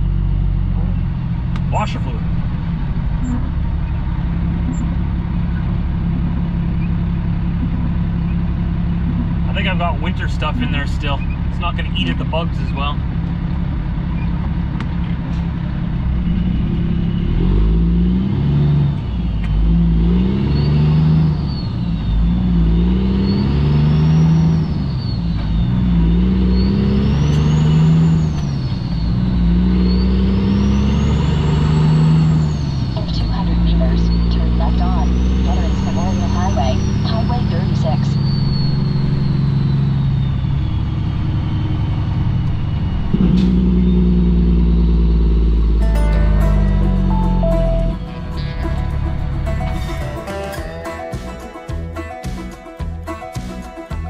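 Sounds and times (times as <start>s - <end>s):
diesel truck engine accelerating: 0.0s - 54.0s
high whine: 45.6s - 50.7s.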